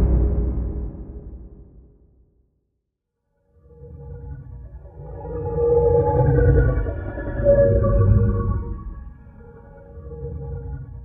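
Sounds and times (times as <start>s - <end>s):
low rumble: 0.0s - 2.4s.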